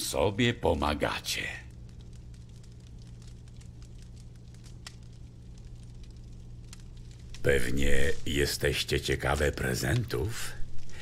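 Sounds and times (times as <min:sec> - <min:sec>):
fireplace fire crackling: 0:00.0 - 0:11.0
low hum: 0:00.0 - 0:11.0.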